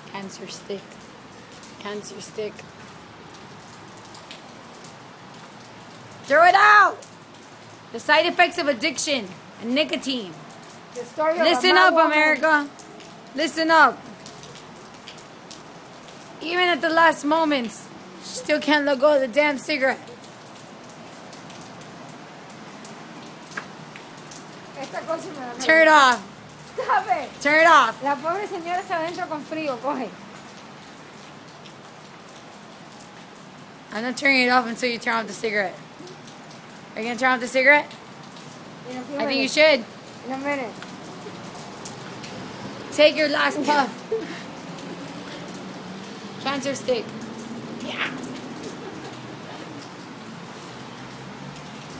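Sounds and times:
rain falling on pavement: 0:00.0 - 0:51.9.

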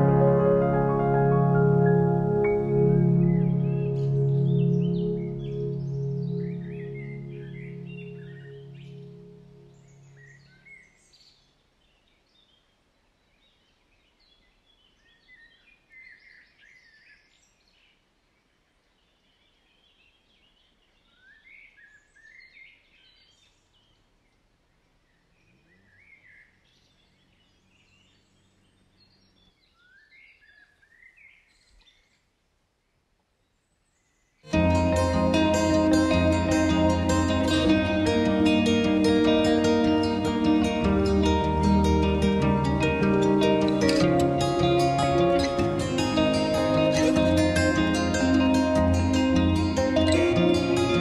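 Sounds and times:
soft music: 0:00.0 - 0:10.5, 0:34.5 - 0:51.0
birds chirping: 0:00.0 - 0:12.3, 0:19.3 - 0:32.1, 0:34.5 - 0:51.0.

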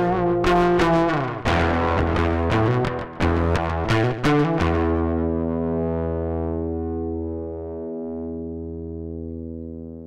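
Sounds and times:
distorted electric guitar chord ringing: 0:00.0 - 0:10.0.

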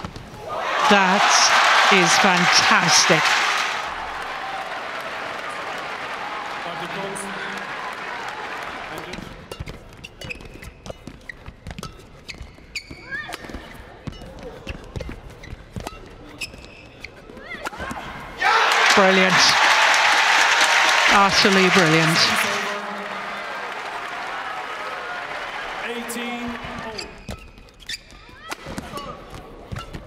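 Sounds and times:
crowd noise: 0:00.0 - 0:09.5, 0:17.8 - 0:27.2
loud applause: 0:00.4 - 0:09.4, 0:18.4 - 0:27.1
shoe squeaks on court: 0:09.5 - 0:17.3, 0:26.8 - 0:30.0.

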